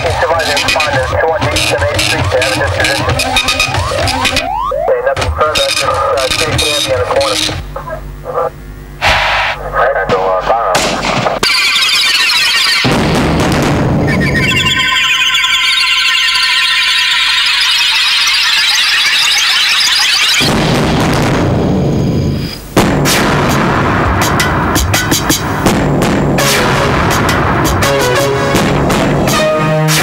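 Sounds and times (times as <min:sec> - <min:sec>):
dense electronic texture: 0:00.0 - 0:05.0, 0:11.4 - 0:27.9
voice over music: 0:00.0 - 0:07.2
electronic music: 0:00.0 - 0:07.6, 0:11.4 - 0:20.6.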